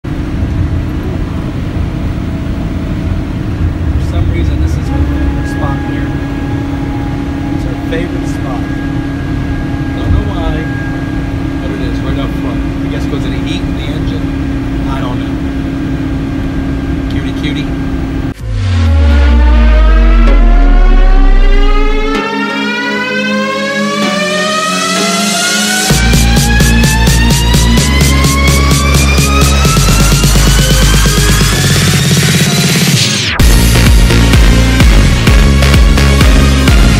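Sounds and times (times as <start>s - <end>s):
vehicle interior rumble and hum: 0.0s - 22.2s
rising tone sweep: 0.3s - 17.0s, 17.8s - 36.9s.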